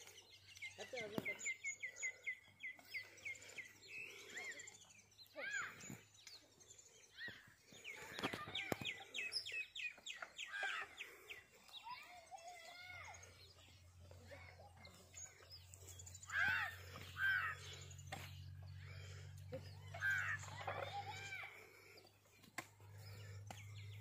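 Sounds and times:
birds chirping and calling: 0.0s - 24.0s.

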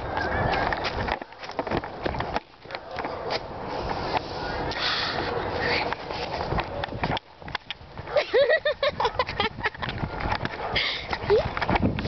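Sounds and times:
rustling on microphone: 0.0s - 4.7s, 5.4s - 12.0s.

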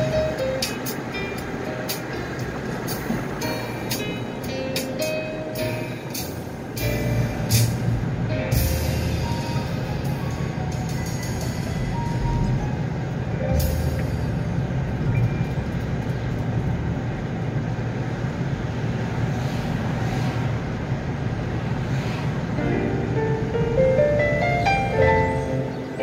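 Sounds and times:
soft background music: 0.0s - 15.4s, 22.6s - 26.0s
car driving rumble: 0.0s - 26.0s.

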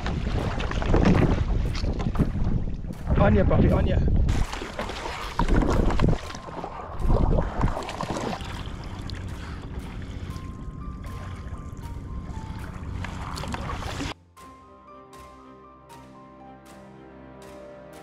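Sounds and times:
water rushing along kayak hull: 0.0s - 2.4s, 4.3s - 14.2s
wind buffeting microphone: 0.0s - 4.5s, 5.3s - 7.9s.

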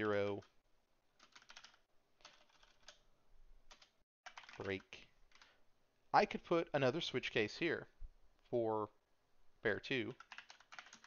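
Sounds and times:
computer keyboard typing: 1.2s - 3.0s, 3.7s - 5.6s, 10.1s - 11.0s.

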